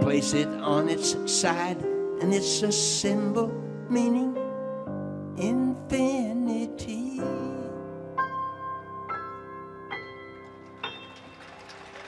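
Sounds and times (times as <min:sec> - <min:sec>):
grand piano notes: 0:00.0 - 0:12.0.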